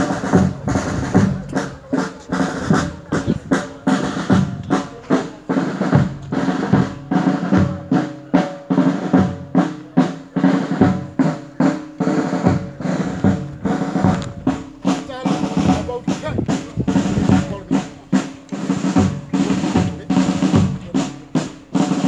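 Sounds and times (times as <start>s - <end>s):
marching drums funeral march: 0.0s - 22.0s.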